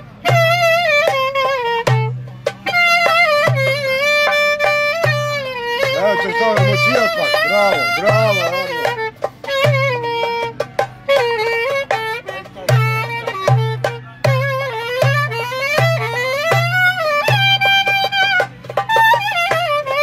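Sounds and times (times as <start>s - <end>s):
clarinet folk melody: 0.0s - 20.0s
hand drum beat: 0.0s - 20.0s.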